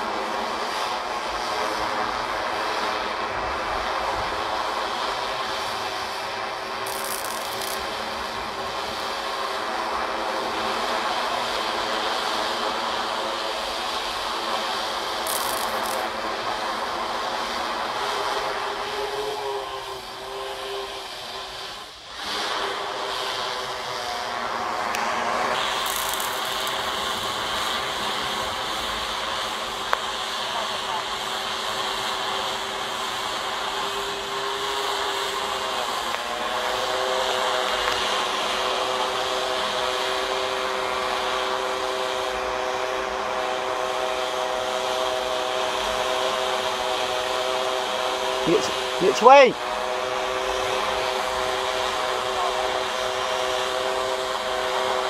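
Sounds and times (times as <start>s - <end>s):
hiss: 0.0s - 55.0s
drone propellers humming: 6.8s - 8.6s, 15.2s - 17.0s, 25.4s - 27.4s.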